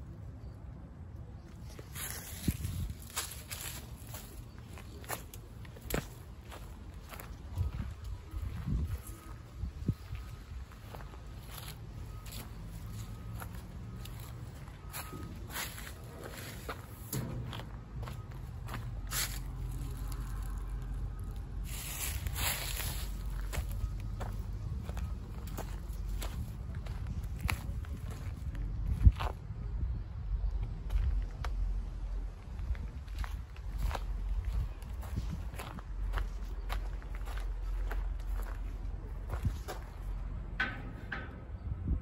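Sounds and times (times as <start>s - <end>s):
steady low rumble: 0.0s - 42.0s
footsteps on dry leaves and gravel: 1.6s - 29.4s, 32.3s - 40.2s.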